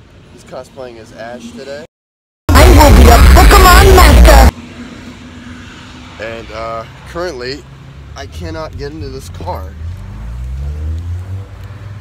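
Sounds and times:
steady low rumble: 0:02.5 - 0:04.5.

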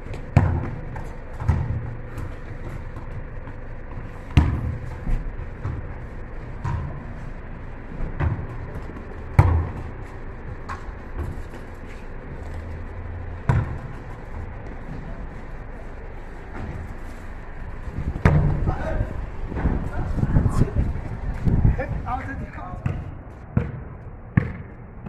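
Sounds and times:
ball bouncing on paving: 0:00.0 - 0:15.0, 0:17.9 - 0:20.7, 0:22.8 - 0:24.8.

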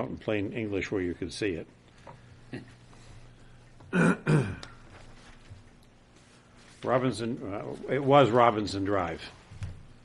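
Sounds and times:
man clearing his throat: 0:03.9 - 0:04.8.

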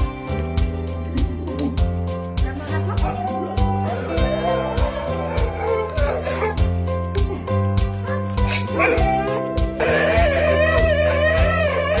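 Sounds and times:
background music with steady beat: 0:00.0 - 0:12.0
dogs yipping and whining: 0:02.9 - 0:06.7.

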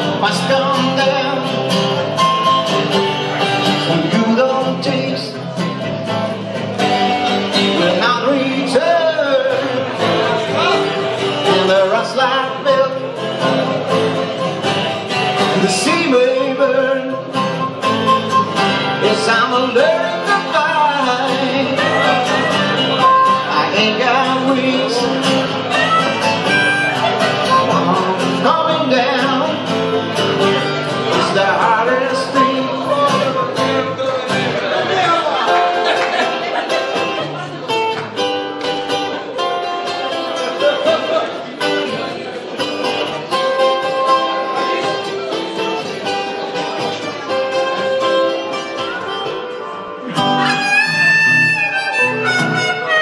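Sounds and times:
man singing: 0:00.0 - 0:35.4
acoustic guitars: 0:00.0 - 0:53.0
harmonica wailing: 0:17.6 - 0:19.0, 0:21.6 - 0:28.8, 0:47.8 - 0:53.0.

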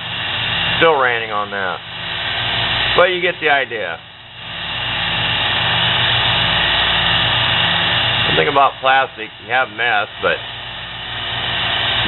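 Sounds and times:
lathe motor humming: 0:00.0 - 0:12.0.

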